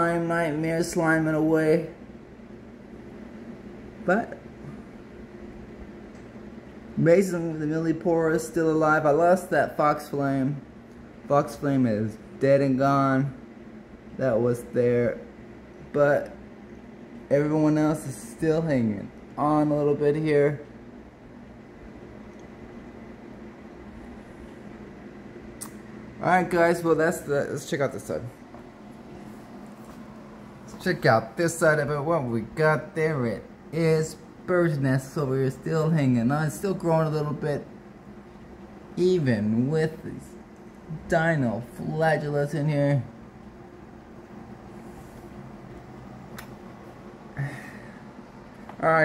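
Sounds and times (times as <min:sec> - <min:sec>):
low machine hum with hiss: 0:00.0 - 0:49.0.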